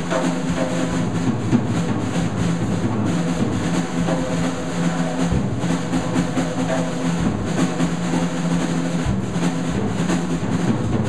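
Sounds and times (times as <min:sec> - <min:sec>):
jazz drum kit solo: 0:00.0 - 0:11.0.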